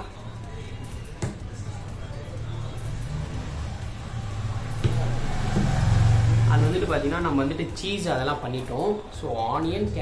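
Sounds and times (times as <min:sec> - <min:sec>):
low motor hum: 0:01.5 - 0:07.0.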